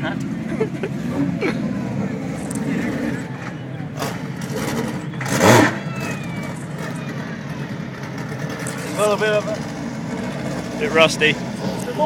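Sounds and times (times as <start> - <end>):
racing car engine idling: 0.0 - 12.0.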